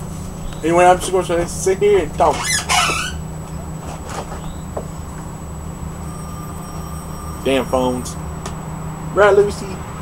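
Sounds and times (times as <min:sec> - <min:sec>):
low background hum and rumble: 0:00.0 - 0:10.0
faint thin tone: 0:05.9 - 0:08.4.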